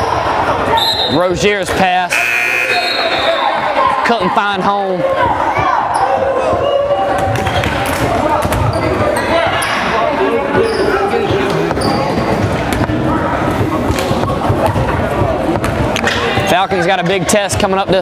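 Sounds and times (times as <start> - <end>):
crowd chatter and shouts: 0.0 - 18.0.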